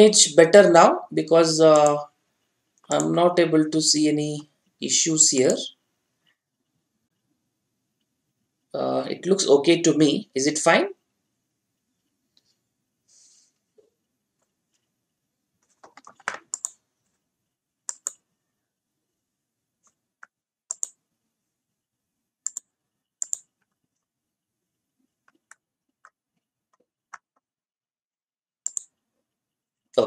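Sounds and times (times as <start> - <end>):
computer mouse clicks: 15.6 - 16.8, 17.9 - 18.3, 19.8 - 21.0, 22.4 - 23.8, 28.6 - 29.0.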